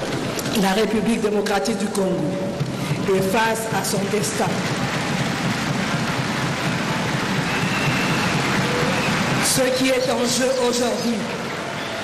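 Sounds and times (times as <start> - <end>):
dense applause: 3.8 - 12.0.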